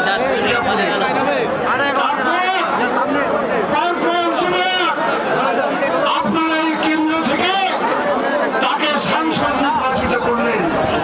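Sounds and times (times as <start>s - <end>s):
crowd of men talking: 0.0s - 11.0s.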